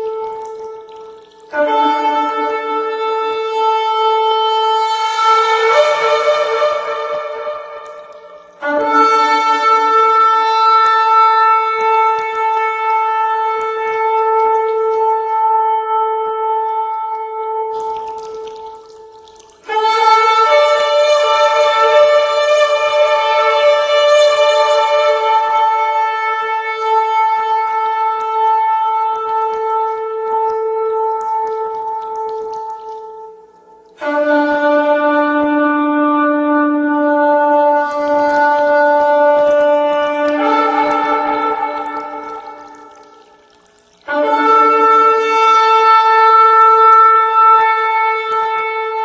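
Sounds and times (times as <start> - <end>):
shofar blasts: 0.0 - 49.0.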